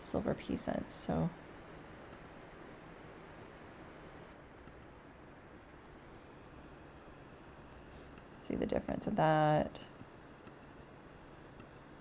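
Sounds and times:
faint microphone hiss: 0:00.0 - 0:12.0.

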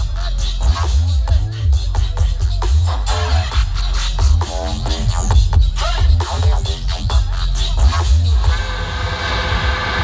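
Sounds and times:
loud electronic hip-hop music: 0:00.0 - 0:09.9.

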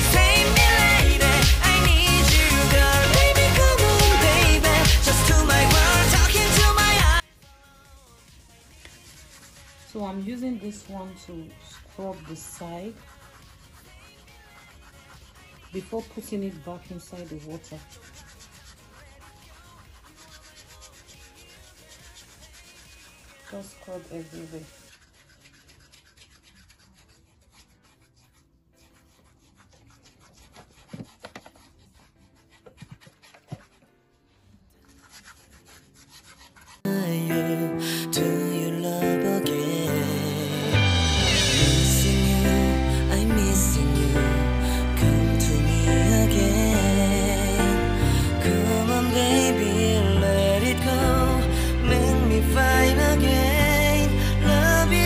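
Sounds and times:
foot file rubbing wet skin: 0:08.4 - 0:33.9, 0:34.5 - 0:36.9.

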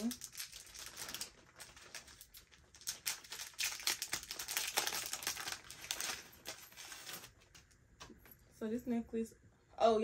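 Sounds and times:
plastic bag crinkling: 0:00.0 - 0:07.6.

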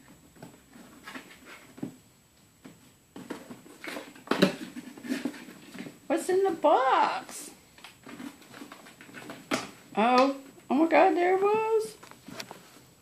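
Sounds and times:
cat scratching cardboard box: 0:00.3 - 0:02.0, 0:02.8 - 0:06.6, 0:07.8 - 0:09.8.

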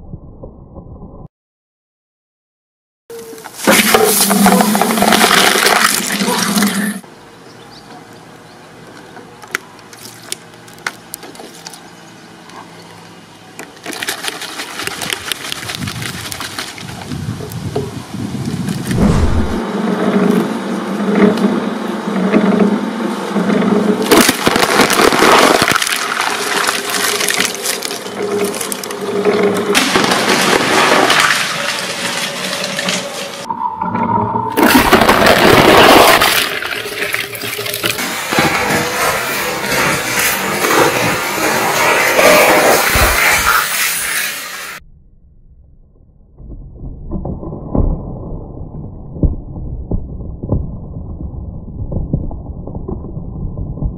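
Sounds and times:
liquid gushing and spraying: 0:03.6 - 0:07.0, 0:35.1 - 0:44.8
shredder grinding plastic bottles: 0:03.7 - 0:07.0, 0:23.4 - 0:33.4, 0:34.6 - 0:43.6
plastic crunching and cracking: 0:13.6 - 0:17.1, 0:24.1 - 0:33.1.

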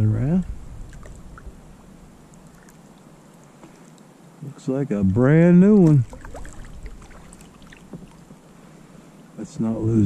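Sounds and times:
low wind rumble on microphone: 0:00.0 - 0:02.2
water movement around kayak hull: 0:00.5 - 0:04.4, 0:05.0 - 0:09.4.

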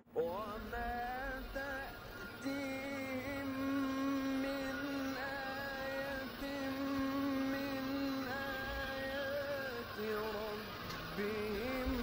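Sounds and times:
slow melody of long held notes: 0:00.0 - 0:12.0.

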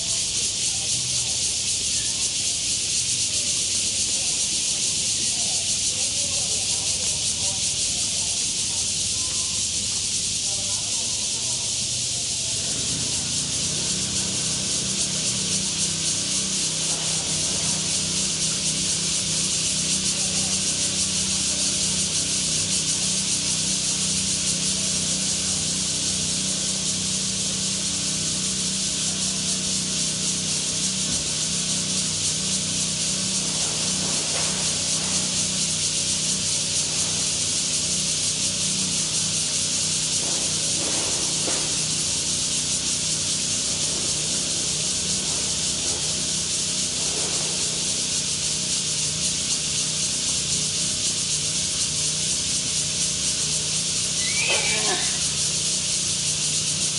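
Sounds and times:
cicadas chorus: 0:00.0 - 0:56.9.

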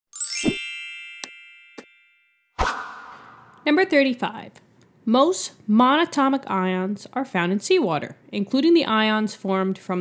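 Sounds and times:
bright multi-tone chime: 0:00.1 - 0:02.6.

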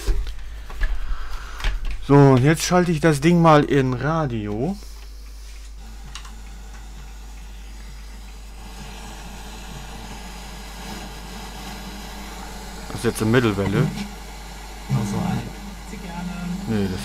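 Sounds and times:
radio static hiss: 0:04.6 - 0:17.0.

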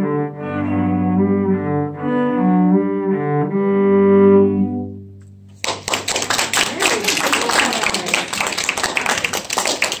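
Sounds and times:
cellos playing: 0:00.0 - 0:05.6
audience applause: 0:05.6 - 0:10.0.

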